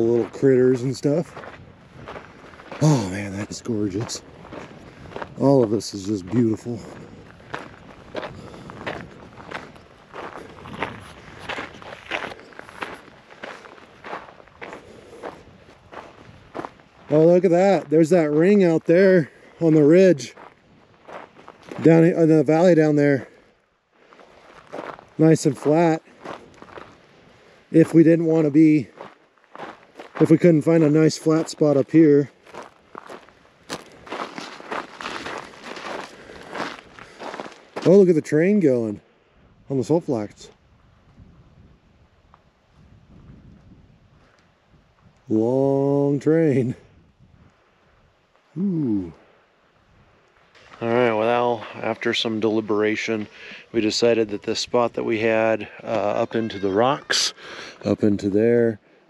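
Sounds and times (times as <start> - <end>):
footsteps on dirt and gravel: 0.0 - 38.6, 49.1 - 57.0.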